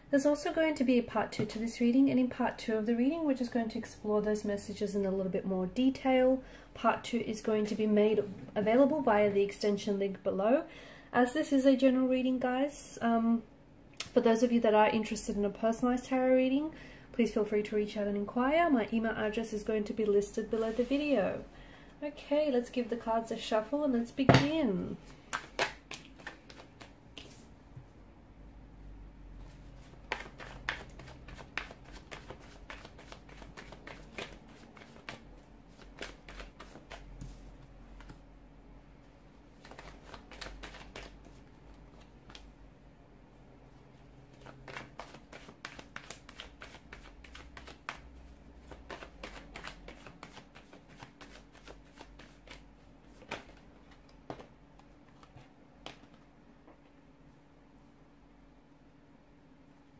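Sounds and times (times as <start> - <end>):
cards being shuffled: 25.0 - 27.5, 29.4 - 38.2, 39.5 - 42.5, 44.2 - 56.2.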